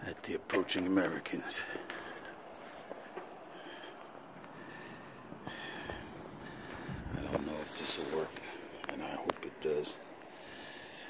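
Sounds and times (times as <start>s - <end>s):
man's voice: 0.0s - 1.8s, 7.1s - 10.0s
faint outdoor background noise: 0.0s - 11.0s.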